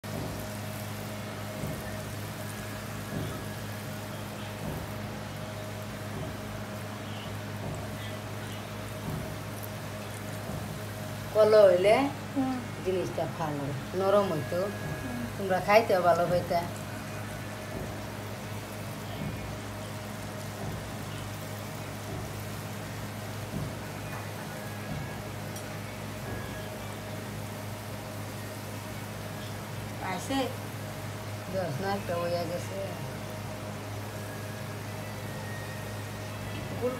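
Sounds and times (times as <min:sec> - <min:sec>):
hot oil sizzling: 0:00.0 - 0:36.9
steady low hum: 0:00.0 - 0:36.9.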